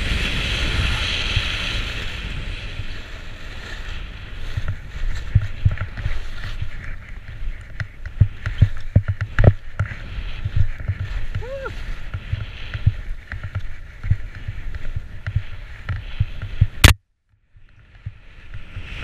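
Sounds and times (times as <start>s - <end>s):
skis hissing over snow: 0.0s - 8.8s, 9.8s - 16.8s
low thumps of skis on bumps: 0.0s - 16.9s
wind rushing on microphone: 0.0s - 16.9s.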